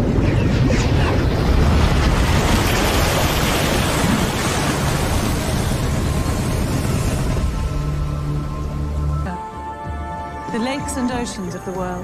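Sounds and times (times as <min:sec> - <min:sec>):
rushing wind and dust: 0:00.0 - 0:09.1.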